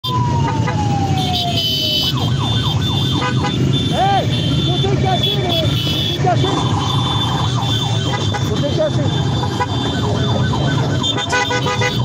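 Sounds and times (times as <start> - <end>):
siren wailing and whooping: 0.0 - 12.0
motorcycle engines running: 0.1 - 12.0.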